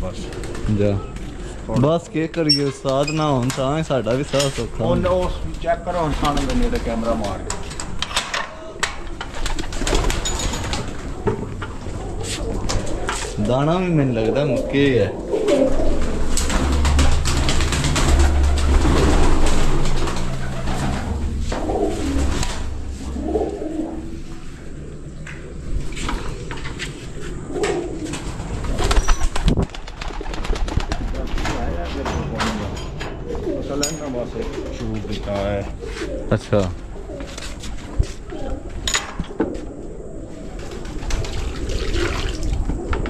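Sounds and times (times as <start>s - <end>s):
pigeons cooing: 0.0s - 1.7s, 4.0s - 43.0s
low rumble: 15.1s - 29.7s.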